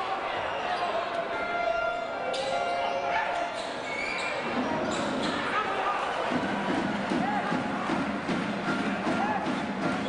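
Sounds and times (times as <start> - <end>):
crowd talking and calling out: 0.0 - 10.0
short high shoe squeak: 3.5 - 5.5.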